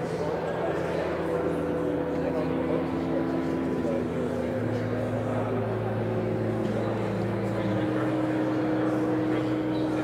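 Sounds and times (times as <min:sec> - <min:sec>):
church organ chords: 0:01.0 - 0:10.0.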